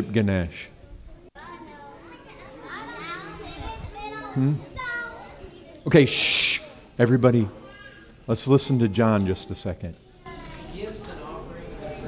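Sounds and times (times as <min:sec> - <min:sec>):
children calling out: 0:01.4 - 0:06.9, 0:07.6 - 0:08.2.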